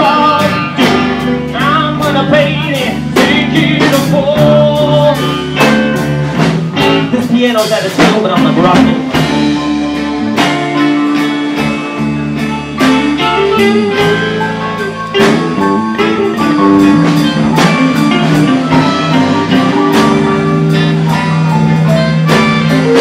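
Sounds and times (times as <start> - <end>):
bass guitar: 0.0 - 23.0
electric guitar: 0.0 - 23.0
keyboard: 0.0 - 23.0
live band playing: 0.0 - 23.0
drum hits: 0.8 - 23.0.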